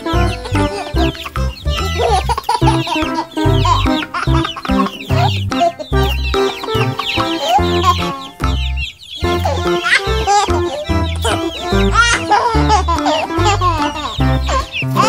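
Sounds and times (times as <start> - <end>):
chicks peeping and clucking: 0.0 - 15.0
upbeat music with bass beat: 0.0 - 15.0.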